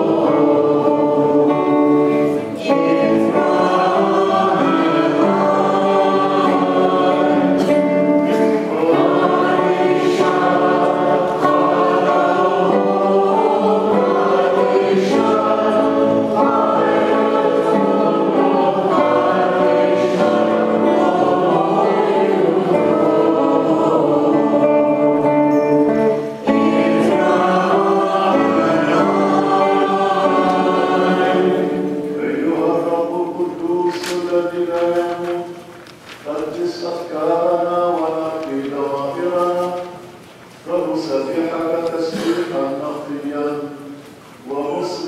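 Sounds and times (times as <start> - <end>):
church choir singing a hymn: 0.0 - 45.0.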